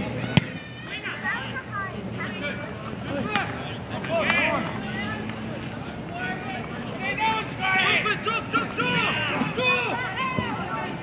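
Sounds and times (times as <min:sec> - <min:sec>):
people shouting: 0:00.1 - 0:11.0.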